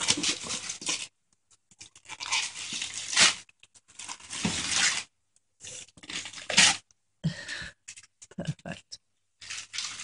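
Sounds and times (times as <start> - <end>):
wrapping paper crinkling: 0.0 - 1.1, 1.8 - 6.8, 9.4 - 10.0.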